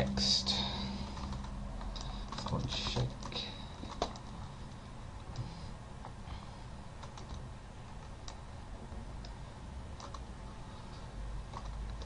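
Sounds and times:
faint low hum: 0.0s - 12.0s
keyboard and mouse clicks: 1.0s - 6.2s, 7.0s - 8.4s, 10.0s - 10.3s, 11.5s - 12.0s.

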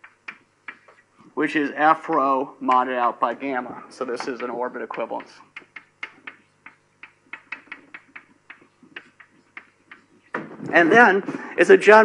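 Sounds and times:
writing taps on a board: 0.0s - 1.0s, 4.0s - 10.6s.

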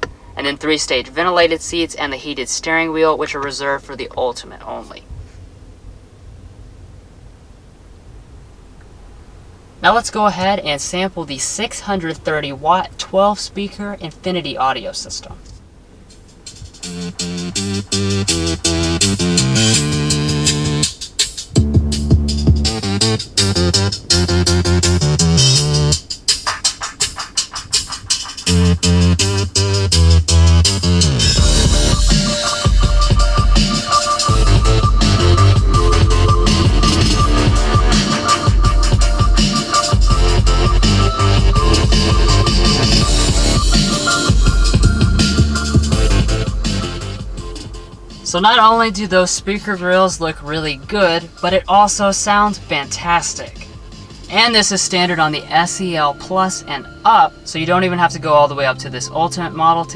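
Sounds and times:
heavy bass beat: 16.1s - 49.6s, 50.2s - 55.2s
loud electronic music: 16.4s - 59.9s.

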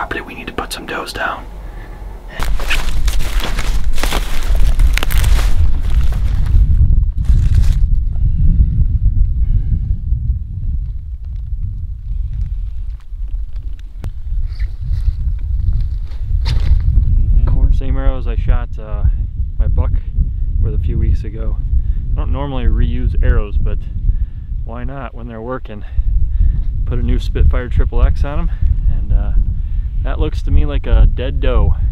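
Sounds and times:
wind rumble on microphone: 0.0s - 31.9s
loud rustling: 2.3s - 6.6s.

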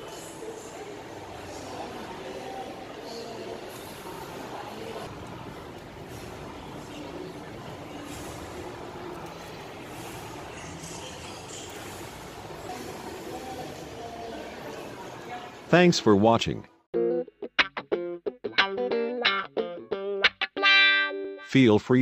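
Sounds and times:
faint distant voices: 0.0s - 15.7s
indoor background noise: 0.0s - 16.9s.

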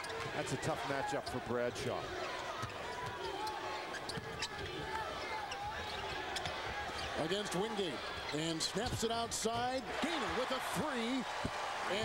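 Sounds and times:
arena crowd noise: 0.0s - 12.0s
shoes squeaking: 2.1s - 10.3s.

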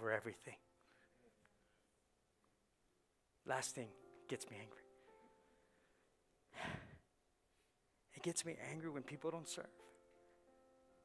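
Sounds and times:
man sighing: 6.6s - 7.0s.

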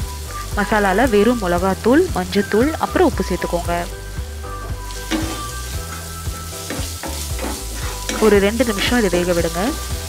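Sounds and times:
food sizzling in a pan: 0.0s - 10.0s
spatula scraping and tapping pan: 4.6s - 8.5s.

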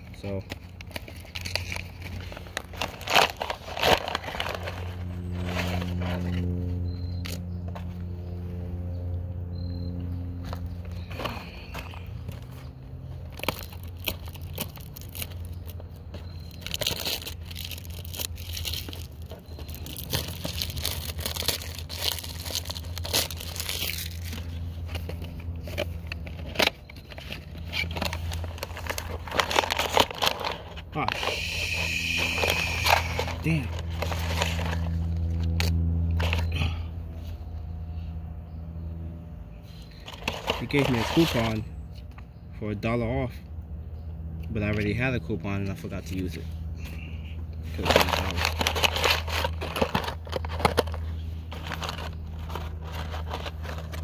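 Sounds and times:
paper wrappers crinkling and tearing: 0.0s - 7.5s, 11.0s - 36.8s, 39.8s - 41.7s, 47.0s - 54.0s
steady low hum: 0.0s - 44.6s.

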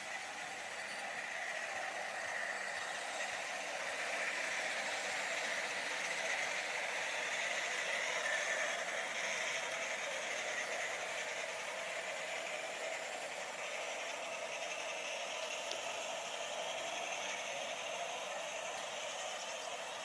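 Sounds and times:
model train whirr and rail rumble: 0.0s - 20.0s.

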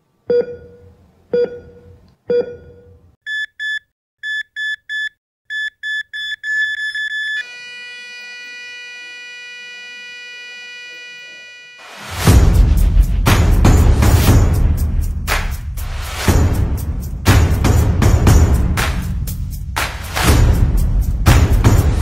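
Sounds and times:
patient monitor beeping: 0.3s - 7.6s
higher-pitched alarm beeps: 3.3s - 11.9s
long steady flatline tone: 7.1s - 11.9s.

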